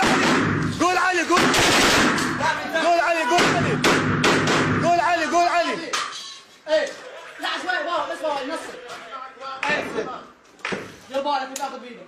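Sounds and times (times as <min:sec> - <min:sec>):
sharp gunshots: 0:00.0 - 0:02.6, 0:03.4 - 0:05.0
automatic gunfire: 0:01.4 - 0:02.3.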